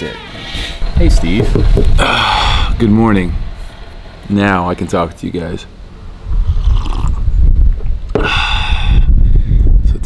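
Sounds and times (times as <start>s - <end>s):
wind buffeting microphone: 0.8s - 4.2s, 6.0s - 10.0s.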